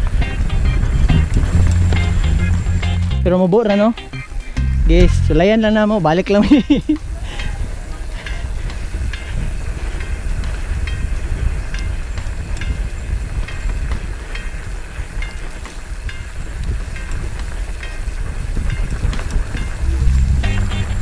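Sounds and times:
wind on microphone: 0.0 - 3.2, 4.2 - 21.0
tyre rumble on dirt: 0.7 - 3.2.

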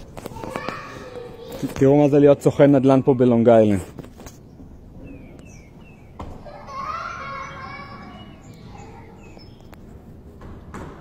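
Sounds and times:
children's voices: 0.0 - 3.8, 5.6 - 9.7
child calling out: 0.4 - 1.7, 6.5 - 9.2.

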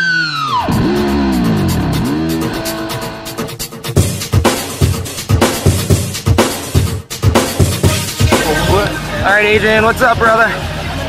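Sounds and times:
electric guitar bending notes: 0.0 - 3.6.

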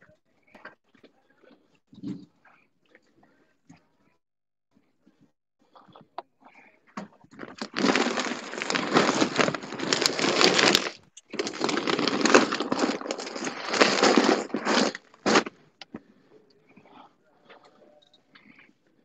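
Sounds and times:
rustling against microphone: 7.4 - 15.5.

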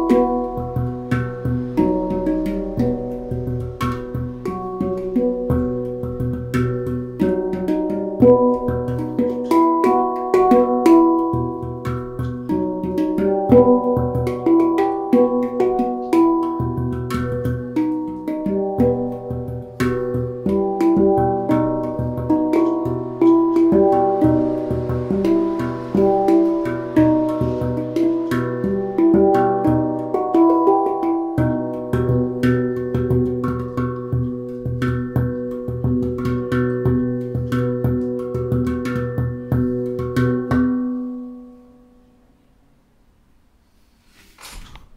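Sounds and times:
handpan ringing notes: 0.0 - 42.2
deep low handpan note: 0.0 - 42.3.

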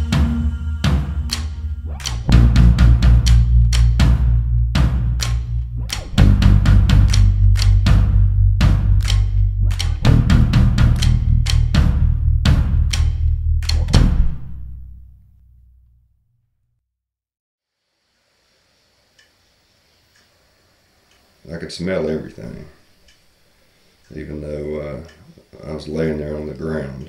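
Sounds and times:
drum kit pounding: 0.0 - 14.9
heavy sustained bass: 0.0 - 15.4.

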